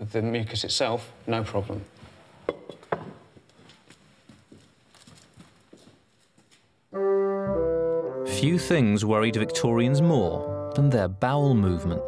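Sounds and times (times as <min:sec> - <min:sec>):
horse hooves clip-clopping: 0:02.8 - 0:06.8
brass music: 0:07.0 - 0:12.0.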